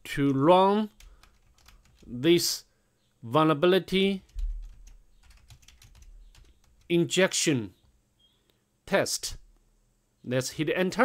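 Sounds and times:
keyboard typing: 1.0s - 2.1s, 4.2s - 6.9s.

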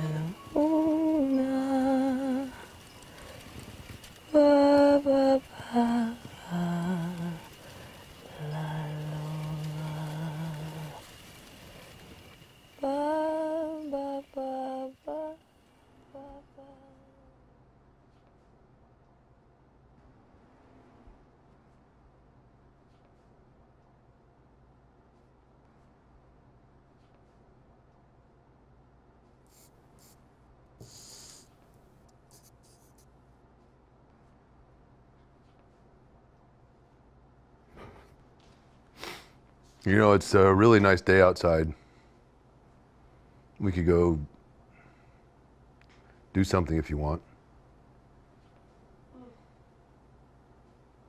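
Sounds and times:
person humming a melody: 0.0s - 2.7s, 4.3s - 7.6s, 8.2s - 11.1s, 12.8s - 15.4s, 16.0s - 17.4s
low room hum: 0.0s - 51.0s.

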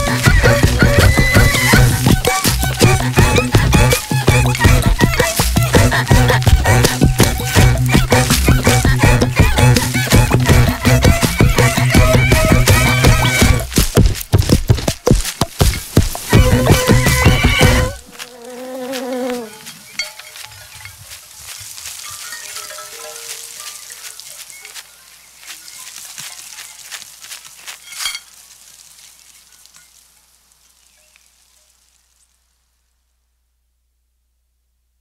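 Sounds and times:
small crackles and clicks: 25.5s - 32.4s.

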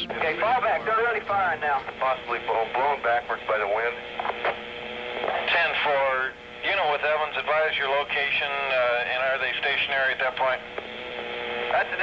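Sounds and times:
radio channel hum: 0.0s - 12.0s
voice over police radio: 5.2s - 10.7s, 11.7s - 12.0s.

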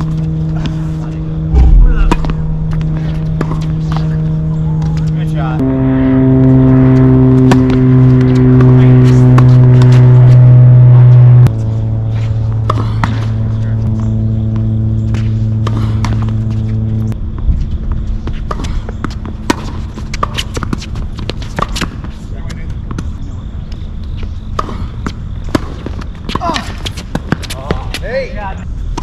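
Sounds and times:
motor drone: 0.0s - 17.4s.

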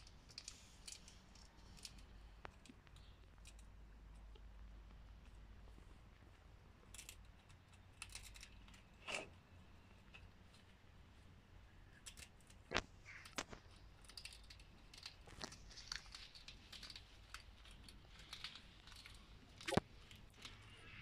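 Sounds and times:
hedgehog crunching and rustling: 0.0s - 21.0s.

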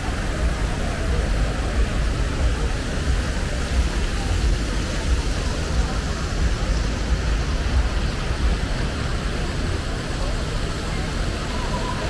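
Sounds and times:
heavy low rumble: 0.0s - 11.5s
city street noise: 0.0s - 12.0s.

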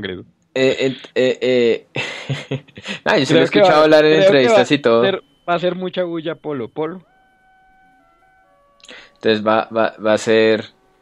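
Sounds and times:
person speaking: 0.0s - 2.0s, 2.6s - 7.0s, 8.8s - 10.7s
soft synth pad tones: 3.1s - 11.0s.

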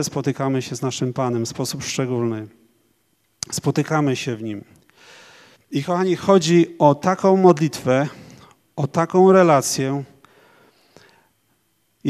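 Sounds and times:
faint breathing into microphone: 4.9s - 5.7s, 10.2s - 11.5s.

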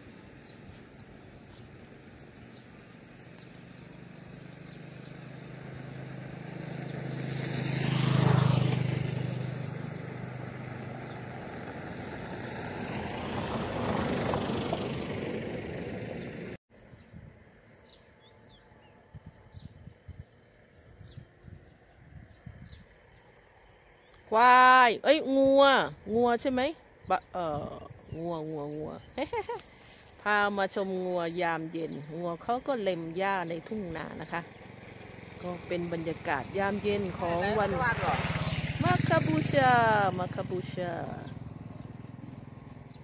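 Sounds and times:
motor vehicles passing by: 0.0s - 43.0s.

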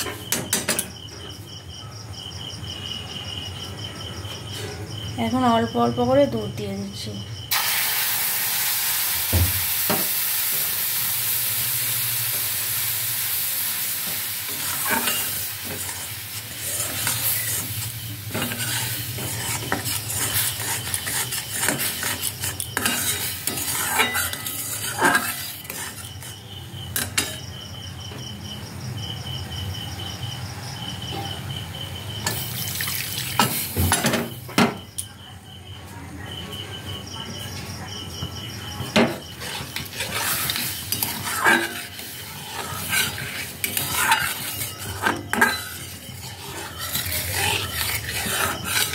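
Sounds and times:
crickets chirping: 0.0s - 48.9s
milk sizzling in hot pan: 7.5s - 27.4s, 32.2s - 34.5s, 38.9s - 48.9s
metal spatula scraping a pan: 14.0s - 27.4s, 32.2s - 34.4s, 38.8s - 48.9s.

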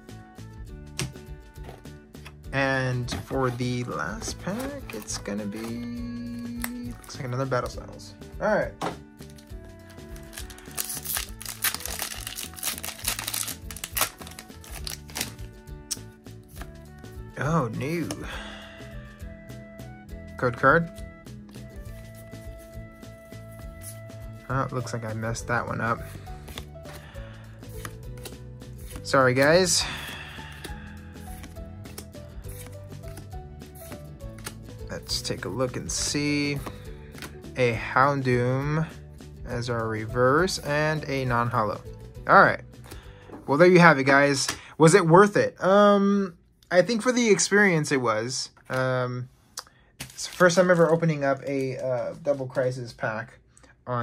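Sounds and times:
background music: 0.0s - 54.0s
foil wrapper crinkling: 10.1s - 15.5s.

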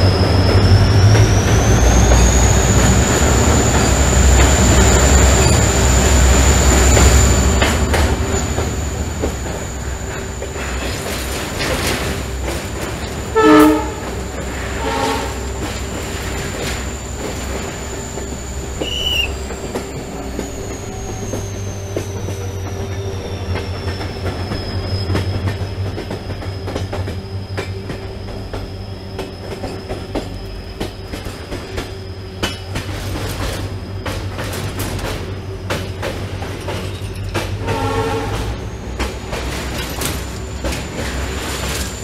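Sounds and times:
train rumble and rail clatter: 0.0s - 42.0s
wheel flanges squealing: 0.0s - 42.0s
train horn blast: 13.2s - 15.8s, 37.5s - 38.6s.

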